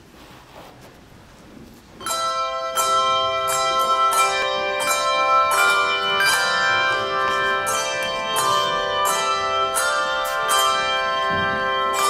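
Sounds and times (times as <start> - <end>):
handbell choir ringing chords: 2.0 - 12.0.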